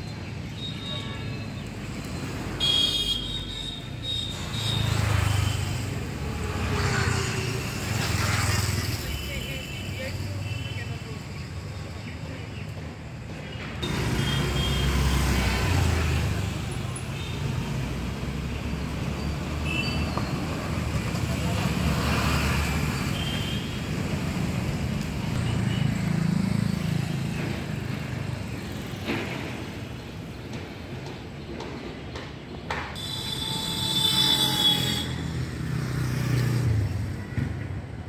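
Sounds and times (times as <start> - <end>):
road traffic passing: 0.0 - 38.0.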